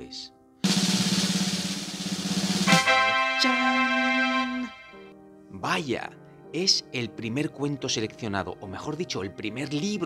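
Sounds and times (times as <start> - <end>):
drum roll: 0.6 - 3.7.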